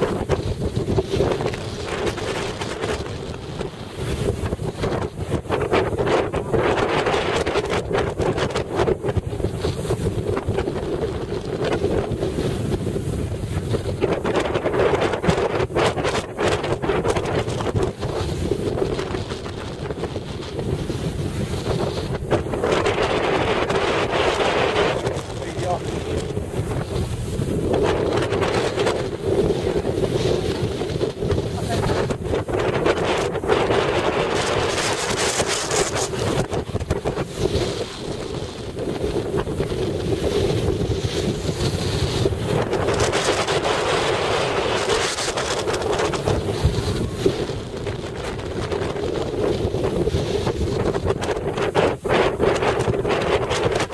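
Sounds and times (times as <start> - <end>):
strong wind buffeting microphone: 0.0 - 53.9.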